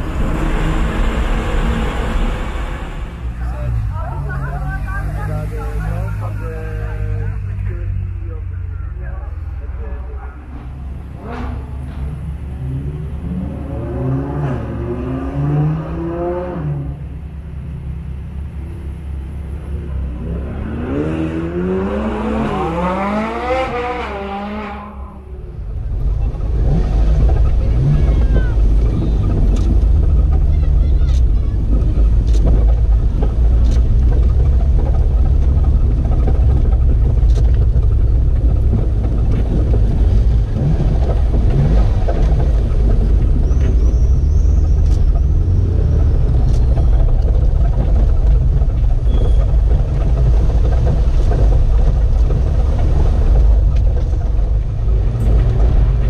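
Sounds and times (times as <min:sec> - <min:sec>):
sports car engine revving: 0:20.0 - 0:25.4.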